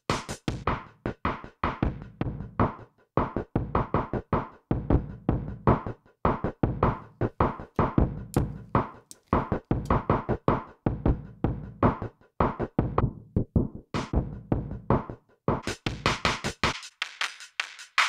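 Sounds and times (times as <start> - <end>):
saturated drum beat: 0.0 - 13.1, 14.0 - 18.0.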